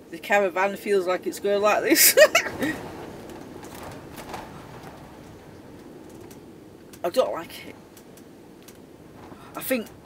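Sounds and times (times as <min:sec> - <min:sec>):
wind rushing: 0:01.4 - 0:10.0
light ticks from buffeted caravan: 0:02.6 - 0:10.0.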